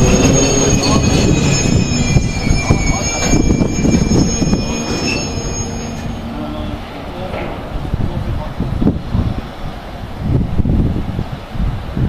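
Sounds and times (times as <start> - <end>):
high wheel squeal: 0.0 - 7.7
train wheels rumbling and knocking: 0.0 - 11.4.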